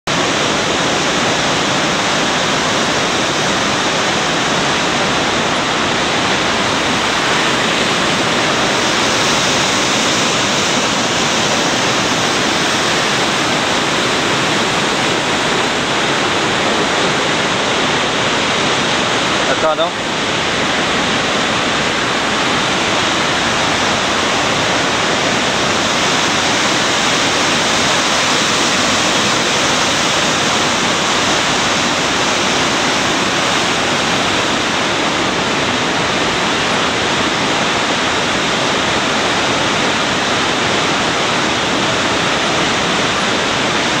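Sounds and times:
river rapids rushing over boulders: 0.1s - 44.0s.

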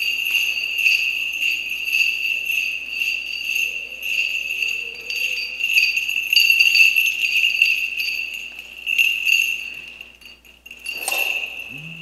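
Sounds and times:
censer bells jingling: 0.0s - 12.0s.

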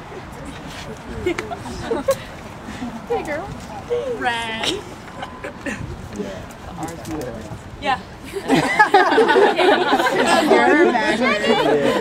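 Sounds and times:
women chattering: 0.0s - 6.2s, 7.8s - 12.0s.

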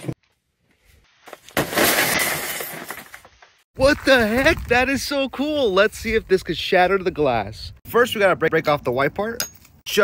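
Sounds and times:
glass window shattering: 1.6s - 3.1s
broken glass falling: 1.6s - 3.2s.

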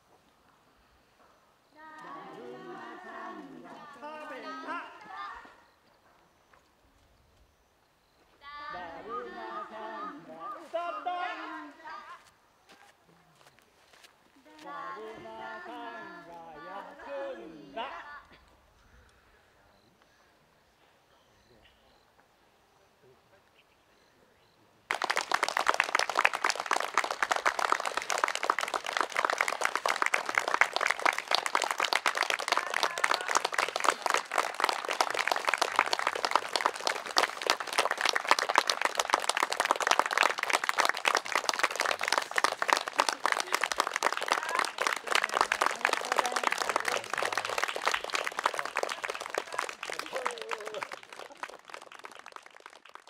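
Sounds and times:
audience applauding: 24.9s - 53.0s.

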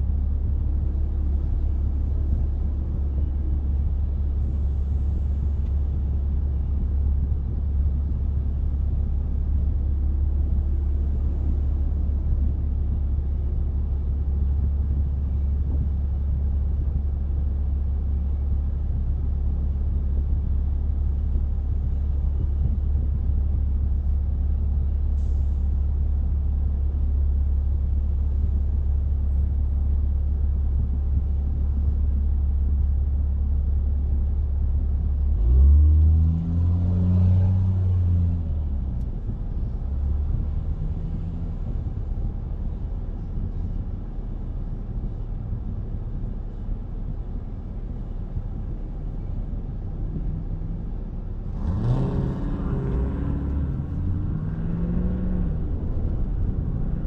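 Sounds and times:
car road and engine rumble: 0.0s - 57.0s.

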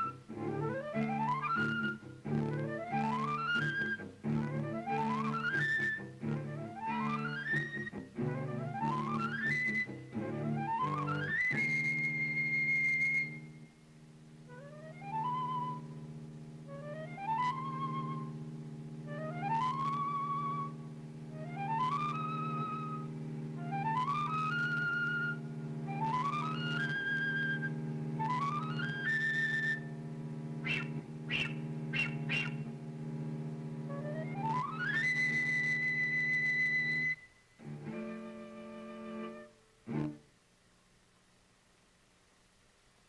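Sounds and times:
flute high whistle-like note: 0.0s - 13.8s, 14.5s - 32.8s, 33.8s - 40.2s
sustained cello note: 0.0s - 40.3s.

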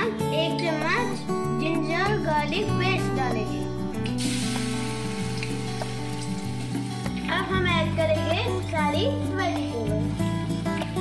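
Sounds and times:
music with singing: 0.0s - 11.0s
hot oil sizzling: 4.0s - 7.5s.

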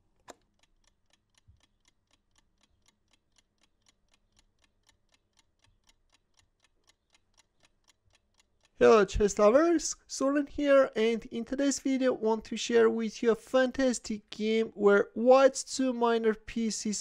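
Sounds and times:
chess clock ticking: 0.0s - 17.0s.

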